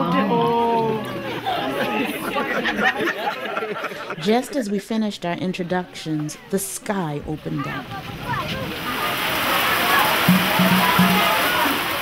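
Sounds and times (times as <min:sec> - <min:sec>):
torrential rain hissing: 0:07.4 - 0:12.0.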